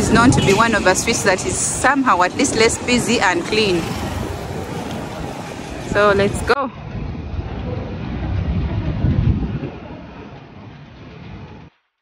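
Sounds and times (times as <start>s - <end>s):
motorcycle traffic rumble: 0.0s - 11.7s.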